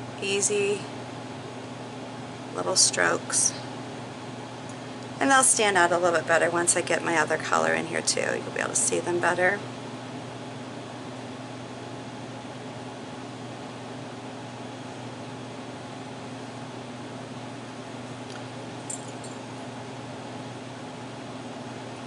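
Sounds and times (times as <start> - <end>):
steady mechanical hum: 0.0 - 22.0.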